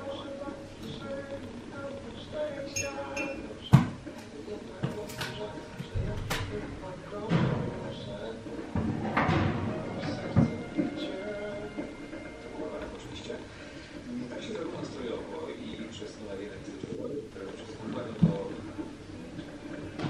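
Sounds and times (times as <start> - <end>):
radio playing music: 0.0 - 20.0.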